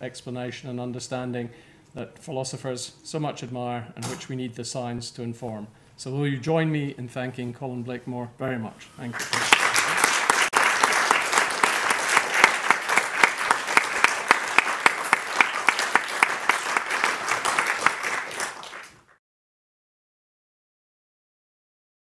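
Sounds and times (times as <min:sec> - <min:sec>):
audience applauding: 0:09.1 - 0:19.2.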